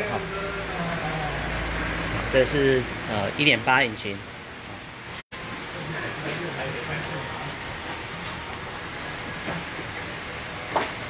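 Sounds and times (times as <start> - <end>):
low mechanical rumble with hiss: 0.0 - 11.0.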